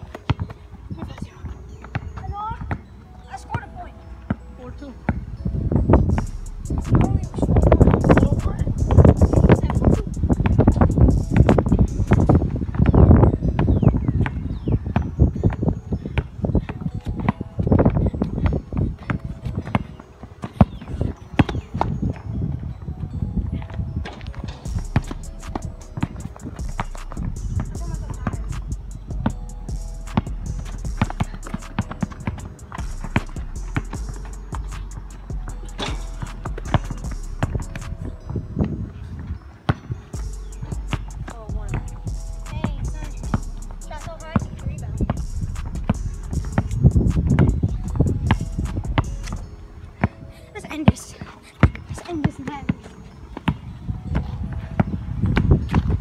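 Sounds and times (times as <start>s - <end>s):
music: 0.0s - 56.0s
voices: 6.7s - 12.3s, 27.0s - 29.5s, 40.2s - 49.5s, 50.4s - 53.0s
basketball bouncing on hard court: 15.0s - 21.9s, 24.2s - 38.1s, 39.7s - 41.9s, 42.5s - 50.2s, 50.8s - 56.0s
running footsteps: 15.0s - 56.0s.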